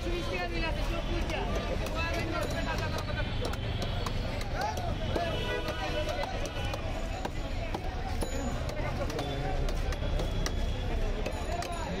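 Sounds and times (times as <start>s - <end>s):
voices: 0.0s - 12.0s
large knife chopping fish: 1.2s - 11.8s.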